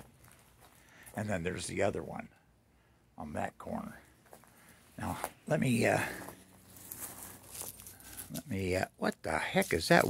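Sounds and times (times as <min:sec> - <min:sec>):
dry leaves and twigs rustling: 0:06.0 - 0:10.0.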